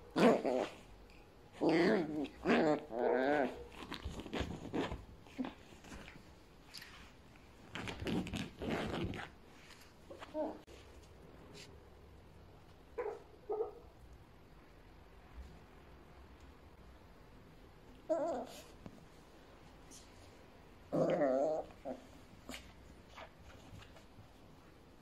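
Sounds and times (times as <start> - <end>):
puppy play growl: 0.1 - 0.9, 1.5 - 6.2, 18.0 - 18.8, 20.8 - 22.8
puppy scrabbling on sofa cushions: 3.8 - 6.2.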